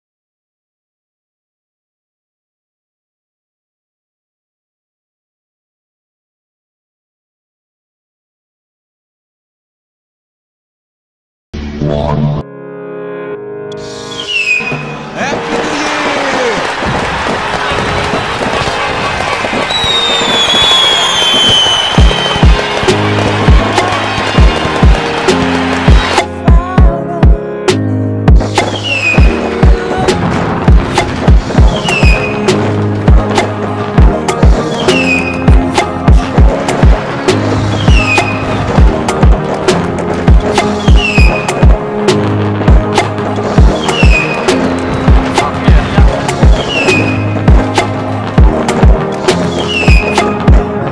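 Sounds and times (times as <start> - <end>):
sustained bass: 11.6 - 12.6, 28.3 - 50.9
firework whistle sliding down: 13.9 - 26.2, 28.6 - 29.4, 31.6 - 32.6, 34.7 - 35.5, 37.6 - 38.6, 40.6 - 41.6, 43.7 - 44.6, 46.5 - 47.4, 49.3 - 50.4
crackle of bursting fireworks: 14.1 - 26.3, 28.4 - 50.7
electronic dance music: 14.6 - 27.4, 28.3 - 50.9
deep kick drum beat: 22.0 - 23.8, 24.4 - 25.3, 25.9 - 27.4, 30.4 - 32.2, 33.1 - 33.3, 34.0 - 34.6, 35.5 - 37.0, 38.8 - 39.4, 40.2 - 41.8, 42.7 - 42.9, 43.6 - 44.2, 44.9 - 46.7, 47.5 - 47.7, 48.4 - 49.0.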